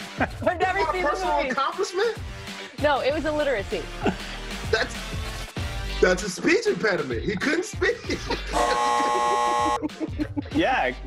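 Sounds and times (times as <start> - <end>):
game-show buzzer: 8.5 - 9.8.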